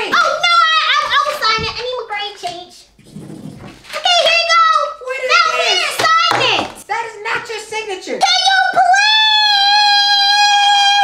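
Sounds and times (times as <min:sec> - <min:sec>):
girl screaming: 0:08.8 - 0:11.0.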